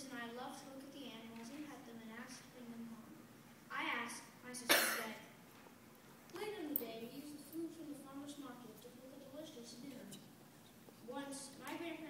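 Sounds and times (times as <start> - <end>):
loud cough: 4.7 - 5.2.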